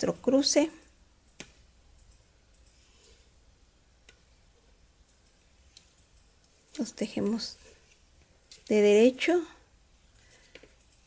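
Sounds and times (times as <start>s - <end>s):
knitting needles clicking: 0.0s - 3.2s, 4.9s - 8.9s, 10.1s - 11.0s.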